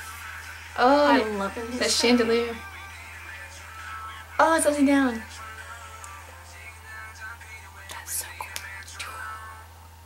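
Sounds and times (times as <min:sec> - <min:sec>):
quiet music: 0:00.0 - 0:10.0
steady low hum: 0:00.0 - 0:10.0
person whispering: 0:07.8 - 0:09.5.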